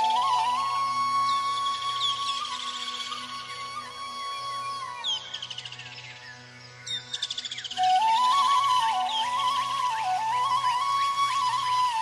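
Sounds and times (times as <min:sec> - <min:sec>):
flute melody: 0:00.0 - 0:05.5, 0:07.8 - 0:12.0.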